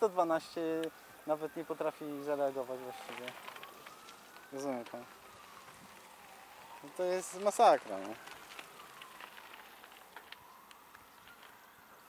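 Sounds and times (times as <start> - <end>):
distant siren wailing: 0.0 - 12.0.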